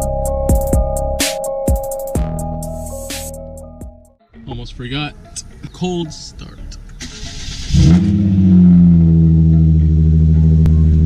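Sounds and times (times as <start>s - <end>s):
car engine starting and idling: 4.6s - 11.0s.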